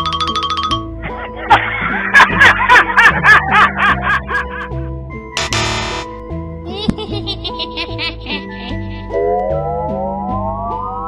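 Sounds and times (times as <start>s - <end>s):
background music with held notes: 0.0s - 11.0s
recorded snickering laughter: 6.7s - 9.1s.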